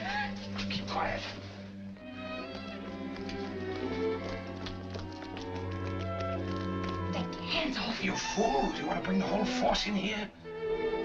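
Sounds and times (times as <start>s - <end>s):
orchestral music with held notes: 0.0s - 11.0s
footsteps on wet pavement: 0.3s - 9.0s.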